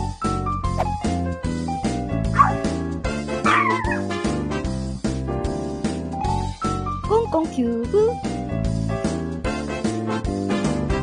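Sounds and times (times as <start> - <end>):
upbeat background music: 0.7 - 11.0
dog yipping: 2.4 - 2.7, 3.4 - 4.1.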